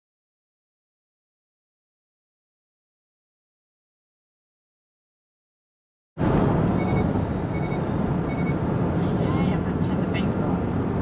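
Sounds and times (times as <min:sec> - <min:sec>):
car engine and tyres rumbling: 0:06.2 - 0:11.0
faint short high beeps: 0:06.8 - 0:08.6.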